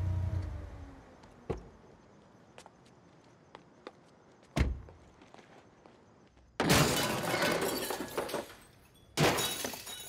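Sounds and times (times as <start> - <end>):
glass shattering: 6.6 - 10.0.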